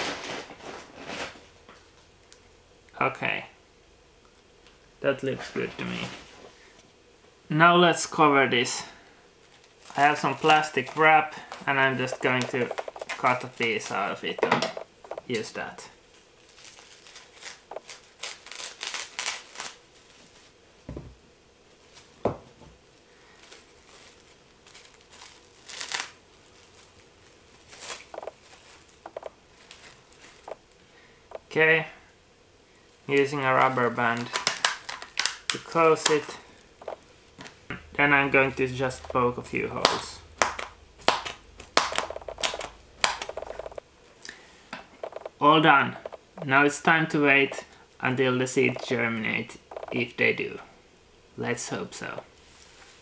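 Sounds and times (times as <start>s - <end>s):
plastic wrap rustling: 0.0s - 2.3s, 9.4s - 20.6s, 23.2s - 30.8s, 32.9s - 43.8s
stick popping through plastic wrap: 16.5s - 19.8s, 23.5s - 26.9s, 27.6s - 30.6s, 34.2s - 36.2s, 39.7s - 43.4s.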